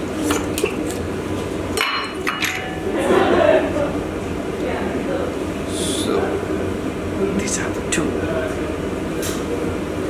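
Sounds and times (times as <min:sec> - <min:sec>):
steady equipment hum: 0:00.0 - 0:10.0.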